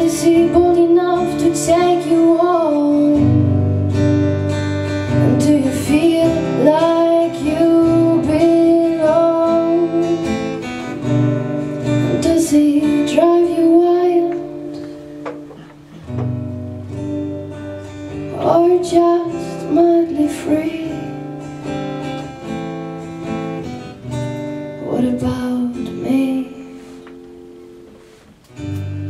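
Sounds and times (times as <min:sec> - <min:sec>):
woman singing: 0:00.0 - 0:04.0, 0:05.1 - 0:11.2, 0:11.8 - 0:14.8, 0:18.1 - 0:21.4, 0:24.8 - 0:26.8
acoustic guitar: 0:00.0 - 0:29.0.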